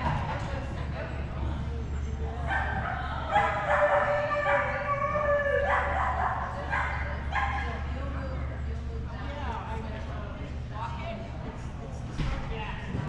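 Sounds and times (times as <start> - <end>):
dog barking and yipping: 2.5 - 5.0, 5.6 - 7.7.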